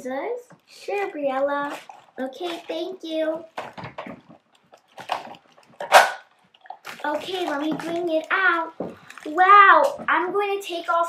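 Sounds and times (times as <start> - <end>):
plastic wrap crinkling: 0.6 - 11.0.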